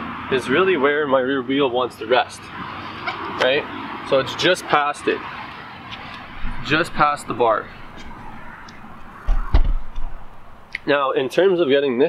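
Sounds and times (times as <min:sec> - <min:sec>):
dull thump: 0:09.2 - 0:10.2
sharp knock: 0:09.2 - 0:10.2.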